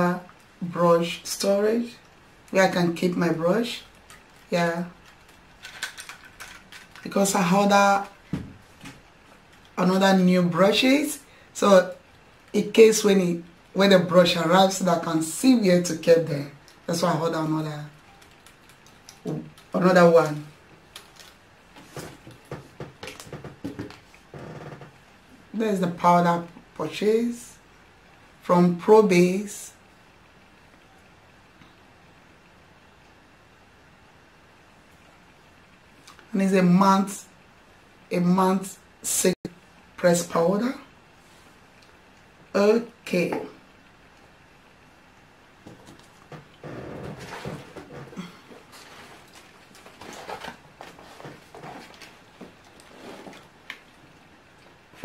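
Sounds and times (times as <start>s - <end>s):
light clicks and knocks of items: 3.8s - 7.1s.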